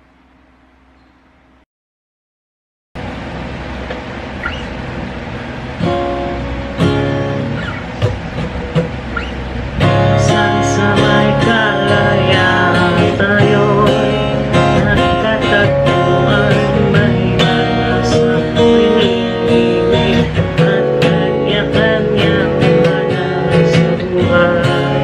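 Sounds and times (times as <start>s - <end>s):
acoustic guitar strumming: 3.0s - 25.0s
man singing: 9.9s - 25.0s.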